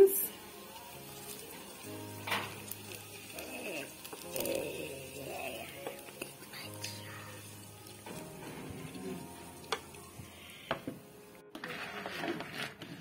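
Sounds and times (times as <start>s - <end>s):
faint background music: 0.0s - 13.0s
spoon scraping and stirring in bowl: 11.5s - 13.0s.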